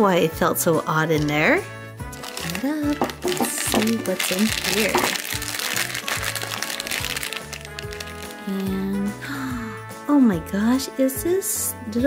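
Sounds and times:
plastic bag crinkling: 2.1 - 9.0.

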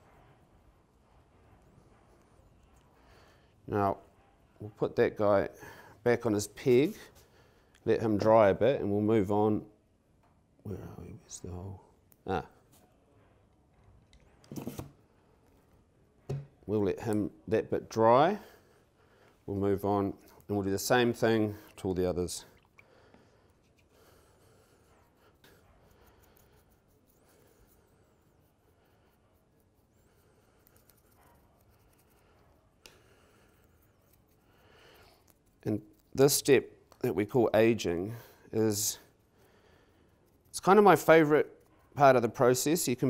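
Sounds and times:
faint handling and rubbing: 10.9 - 32.8
paintbrush scratching: 14.5 - 15.0, 19.6 - 43.0
scrape: 14.5 - 15.0, 23.5 - 32.8.

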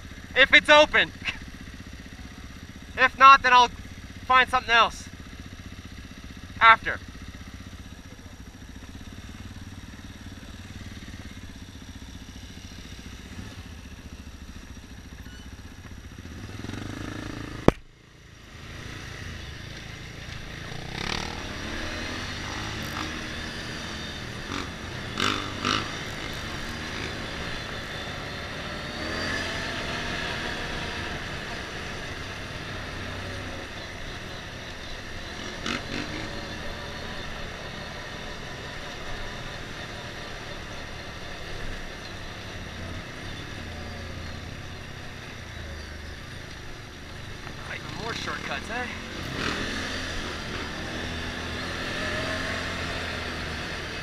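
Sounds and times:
motorcycle engine: 0.0 - 54.0.

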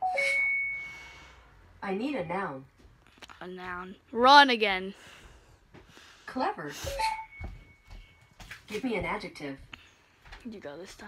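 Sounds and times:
high ringing tone: 0.0 - 1.4, 6.9 - 8.3.

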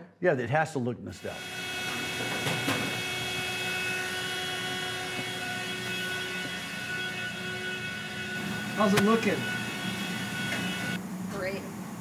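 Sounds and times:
shop machinery drone: 1.2 - 11.5.

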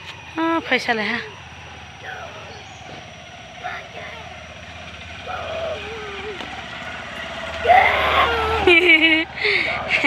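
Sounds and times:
small motorcycle engine: 0.0 - 10.0.

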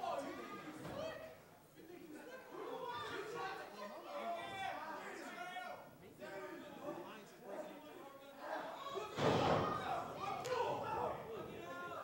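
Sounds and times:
heavy thud of wrestlers: 9.2 - 10.0.

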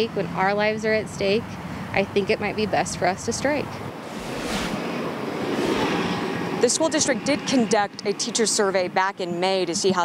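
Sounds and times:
rushing outdoor noise: 2.7 - 9.0.

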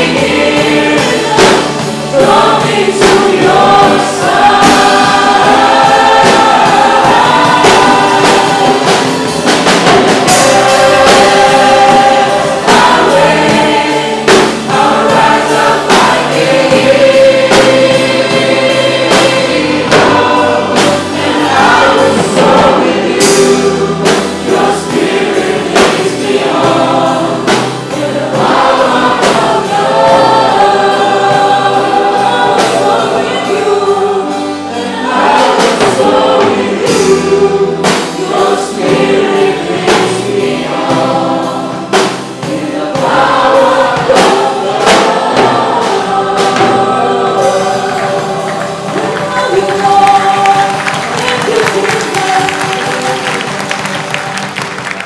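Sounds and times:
drum kit and cymbals: 0.0 - 53.8
congregation singing: 0.0 - 55.0
worship band playing: 0.0 - 55.0.

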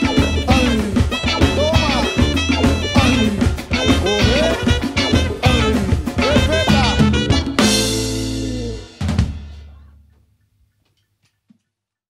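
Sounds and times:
band final hit ringing out: 6.2 - 9.7.

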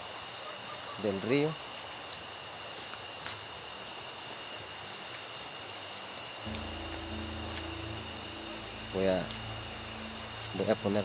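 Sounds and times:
crickets trilling: 0.0 - 11.0
low steady hum: 6.5 - 11.0.

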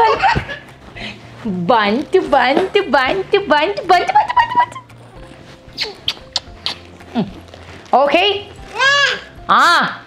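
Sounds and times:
soft kissing smacks: 5.7 - 7.0.

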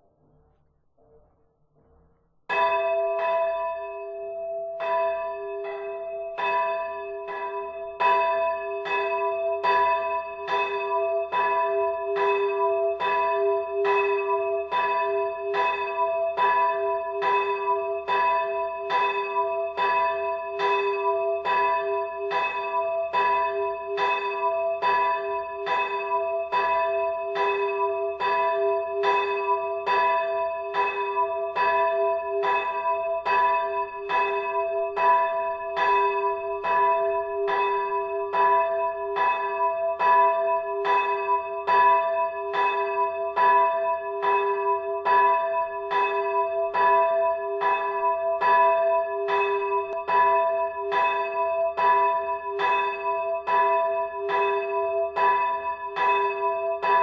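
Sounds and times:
church bells pealing: 2.5 - 57.0.

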